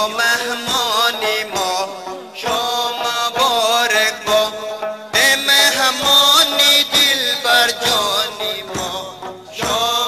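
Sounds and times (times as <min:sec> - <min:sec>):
accompanying music: 0:00.0 - 0:10.0
person singing ornamented melody: 0:00.0 - 0:10.0.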